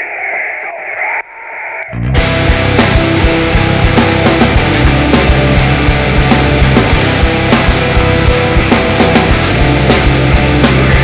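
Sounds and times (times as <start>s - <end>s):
heavy metal band: 1.9s - 11.0s.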